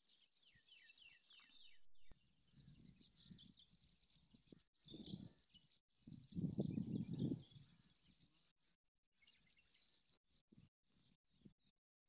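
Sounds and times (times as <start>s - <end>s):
bird chirps: 0.0s - 8.5s.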